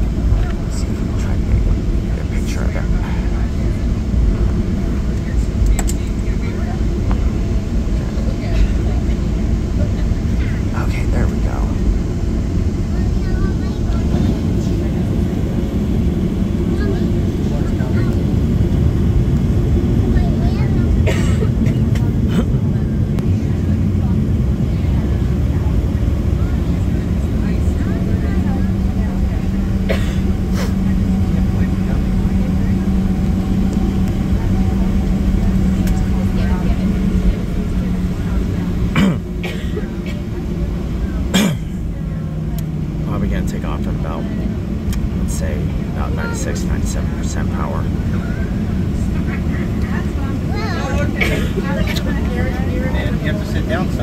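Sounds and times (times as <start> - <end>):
airframe rolling over taxiway: 0.0 - 43.4, 44.2 - 54.0
aircraft engines rumbling: 0.0 - 54.0
steady low hum: 0.0 - 54.0.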